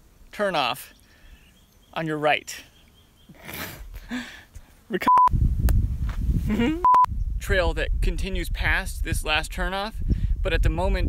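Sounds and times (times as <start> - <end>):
short electronic bleeps: 5.0 - 5.3, 6.8 - 7.1
wind rumbling on microphone: 5.3 - 11.0.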